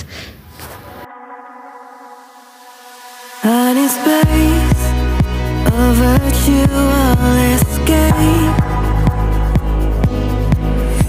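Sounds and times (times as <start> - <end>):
sustained electronic chord: 0.6 - 11.0.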